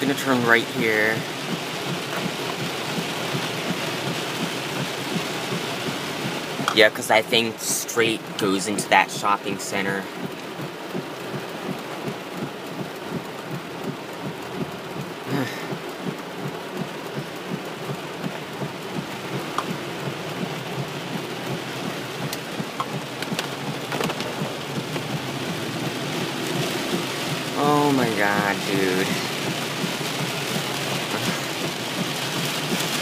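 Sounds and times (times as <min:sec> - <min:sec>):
heavy rain on car roof: 0:00.0 - 0:33.0.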